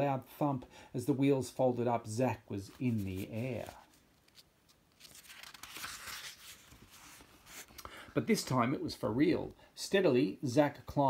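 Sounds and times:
book page turning: 2.6s - 7.8s.

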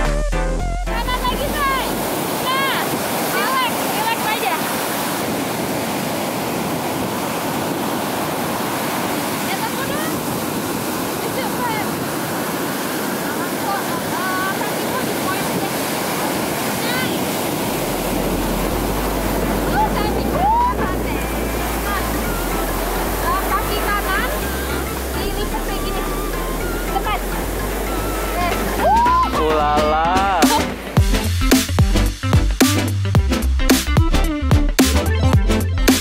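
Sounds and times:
wind rumble on microphone: 1.0s - 29.4s
surf breaking on beach: 1.0s - 31.8s.

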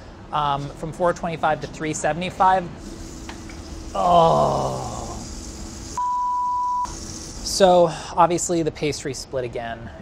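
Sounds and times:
censor bleep tone: 6.0s - 6.9s.

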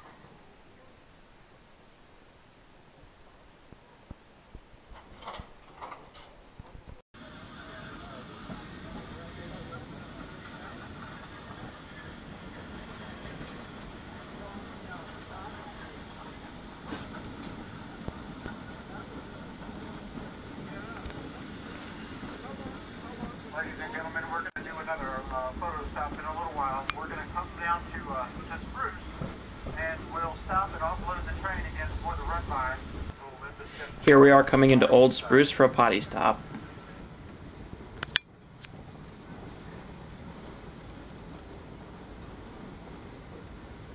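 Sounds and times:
train running noise: 4.9s - 43.9s
passengers talking: 7.2s - 37.2s.

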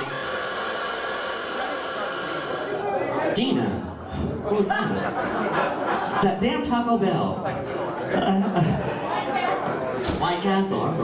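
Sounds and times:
loud static hiss: 0.0s - 2.9s.

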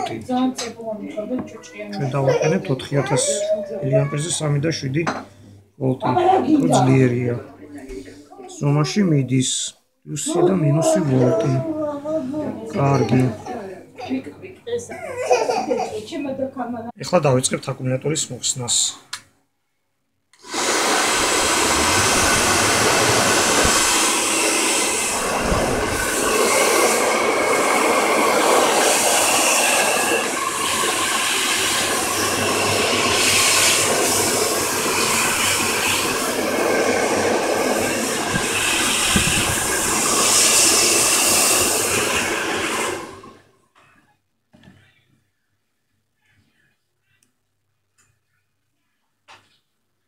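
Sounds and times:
hot-air blower rushing: 20.4s - 43.5s.

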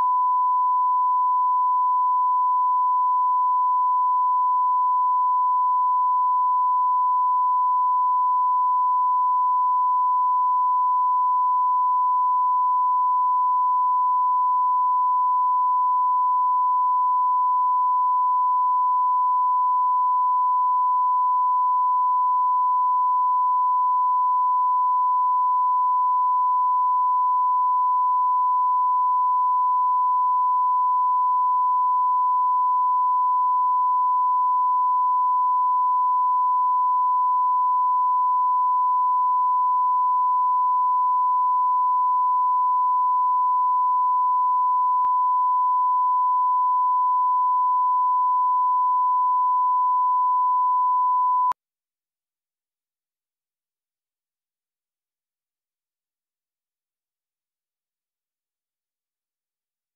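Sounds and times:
sine-wave test tone: 0.0s - 51.6s.

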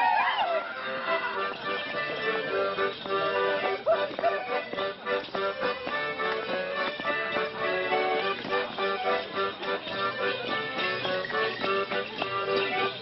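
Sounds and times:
accordion playing folk dance tune: 0.0s - 13.0s.

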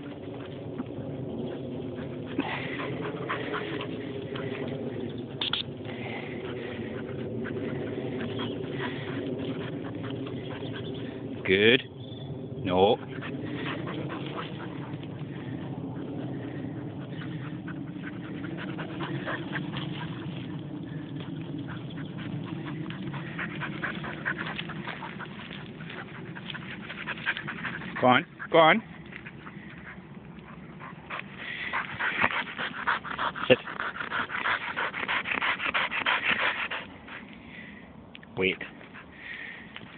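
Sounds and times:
dog panting: 0.0s - 11.8s, 12.6s - 37.4s, 38.5s - 39.9s.

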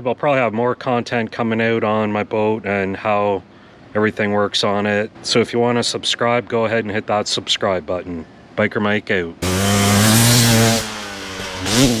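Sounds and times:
dirt bike engine revving: 9.4s - 12.0s.

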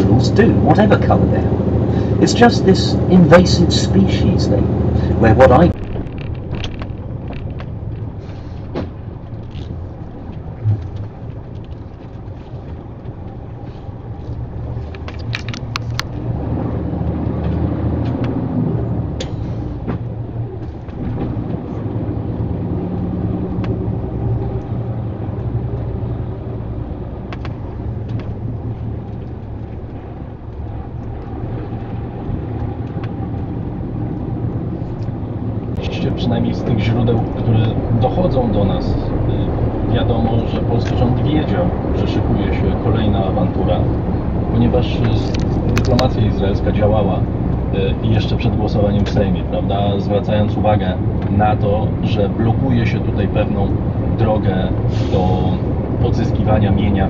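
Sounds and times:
lorry engine drone: 0.0s - 57.0s.

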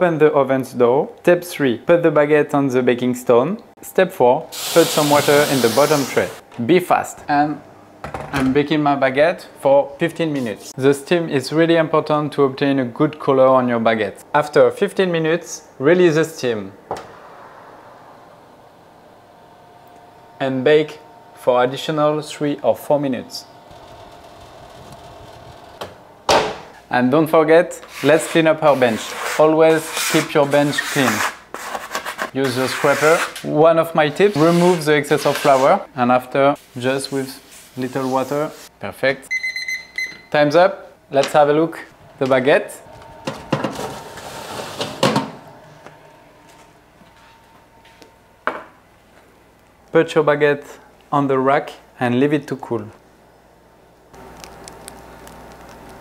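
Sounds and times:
oven humming: 16.0s - 26.8s, 40.9s - 49.9s, 54.1s - 56.0s.

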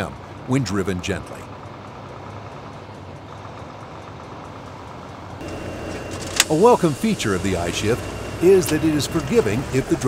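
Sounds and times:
truck diesel engine humming: 0.0s - 10.0s.

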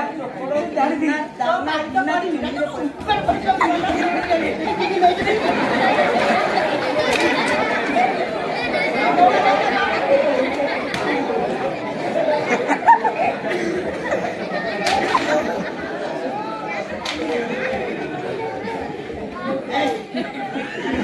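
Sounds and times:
crowd chattering: 0.0s - 21.0s.

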